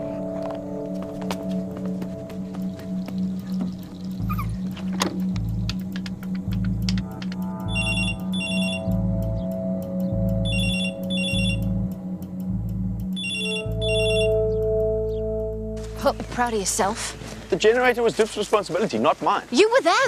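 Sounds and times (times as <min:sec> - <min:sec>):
music with pulsing bass line: 0:00.0 - 0:16.6
telephone ringing: 0:07.7 - 0:08.9, 0:10.5 - 0:11.6, 0:13.2 - 0:14.4.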